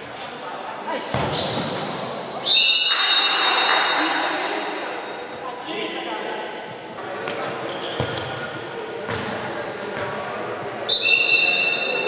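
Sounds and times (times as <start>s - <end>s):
voices echoing in sports hall: 0.0s - 12.0s
loud high whistle: 2.4s - 4.1s, 10.9s - 12.0s.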